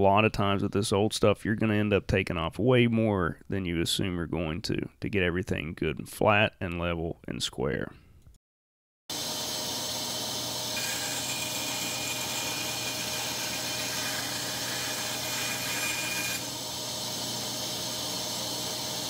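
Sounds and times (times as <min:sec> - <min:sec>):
power saw running: 0:09.1 - 0:19.0
saw blade cutting wood: 0:10.7 - 0:19.0.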